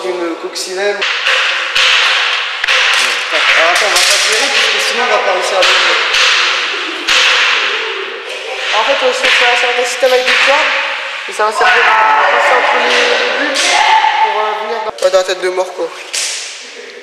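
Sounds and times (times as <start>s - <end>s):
faint voices: 3.2s - 15.0s.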